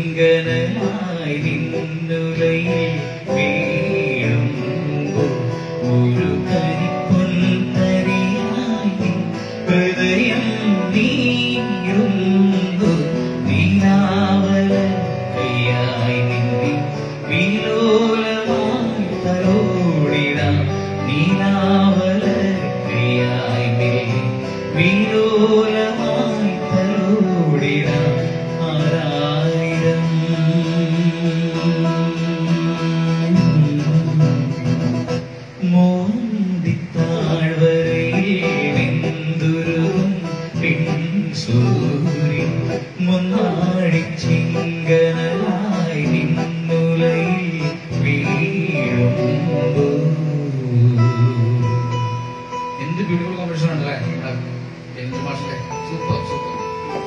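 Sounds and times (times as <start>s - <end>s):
electronic keyboard: 0.0s - 57.0s
man singing into microphone: 0.0s - 57.0s.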